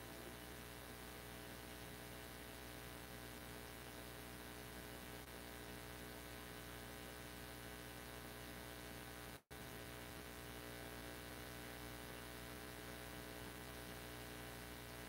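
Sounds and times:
faint electrical mains hum: 0:00.0 - 0:15.0.

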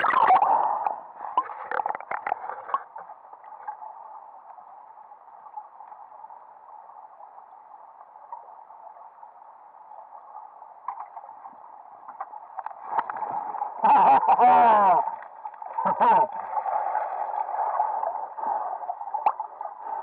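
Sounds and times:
muffled underwater stream rush: 0:00.0 - 0:20.0
faint clicks and knocks: 0:00.8 - 0:03.8, 0:10.8 - 0:13.7.

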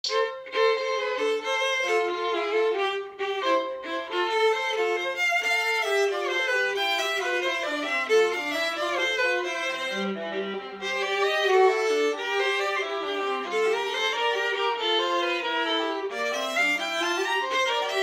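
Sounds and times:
faint viola accompaniment: 0:00.0 - 0:18.0
violin playing a quick melody: 0:00.0 - 0:18.0.

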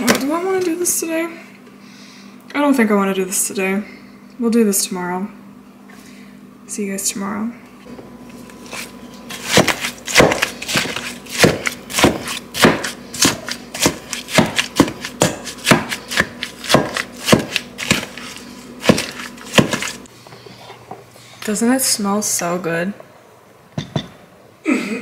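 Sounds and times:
masher squelching strawberries: 0:08.6 - 0:20.1.

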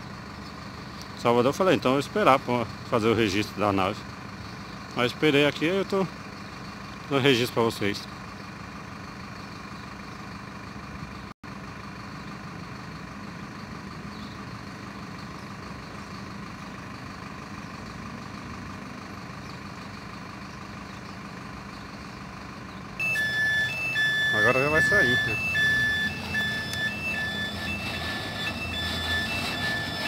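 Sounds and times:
diesel engine idling: 0:00.0 - 0:30.0.

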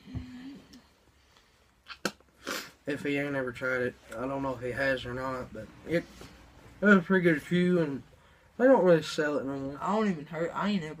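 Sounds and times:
sharp mouth click: 0:01.9 - 0:02.3
spitting hiss: 0:01.9 - 0:02.8.

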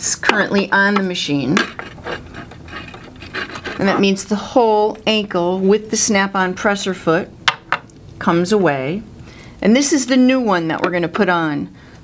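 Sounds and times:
light metal rubbing: 0:00.7 - 0:05.5.

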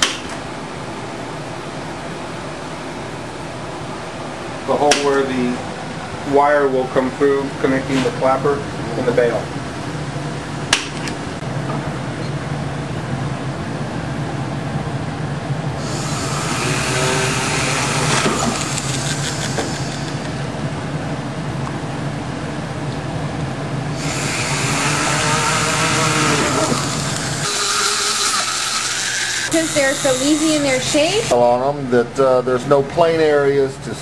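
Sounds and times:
drill bit hissing through metal: 0:15.8 - 0:20.4, 0:23.9 - 0:31.3
rotary drill motor hum: 0:15.8 - 0:20.4, 0:23.9 - 0:31.3.

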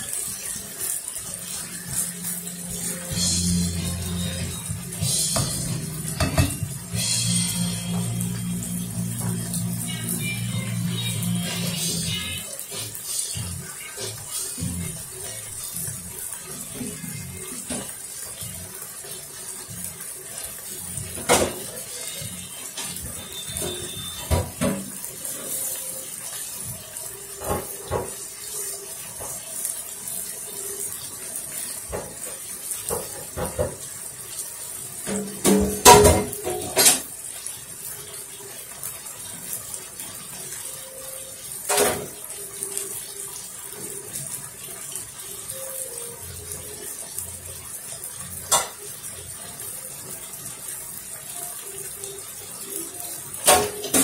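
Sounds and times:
meat sizzling in a frying pan: 0:00.0 - 0:54.0.

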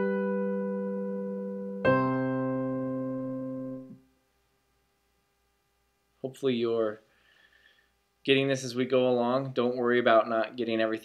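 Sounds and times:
piano chord held: 0:00.0 - 0:04.0.

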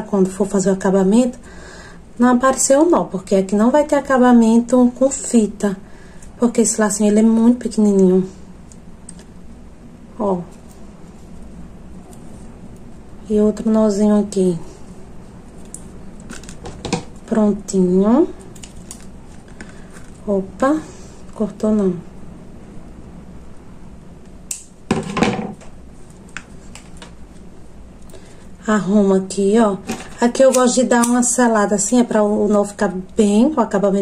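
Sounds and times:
low steady hum: 0:00.0 - 0:34.0
scissors snipping thread: 0:30.2 - 0:31.3.

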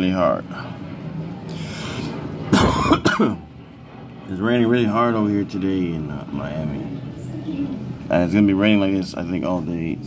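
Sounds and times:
man coughing: 0:02.5 - 0:03.4.

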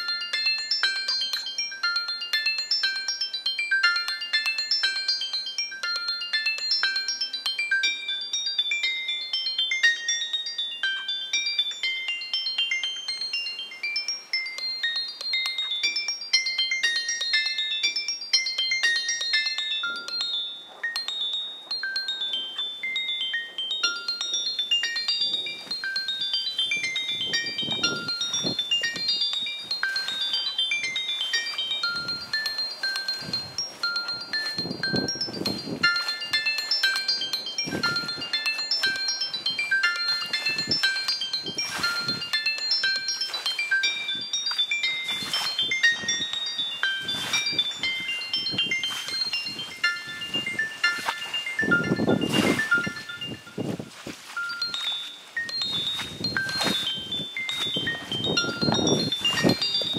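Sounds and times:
music box lullaby: 0:00.0 - 0:59.9.

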